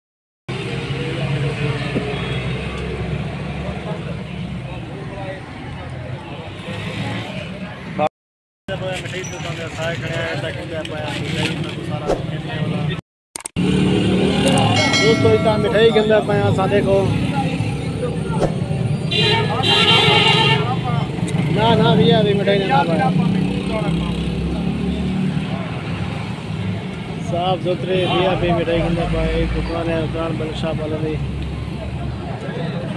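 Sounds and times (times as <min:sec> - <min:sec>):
people's voices: 0:14.3 - 0:25.9.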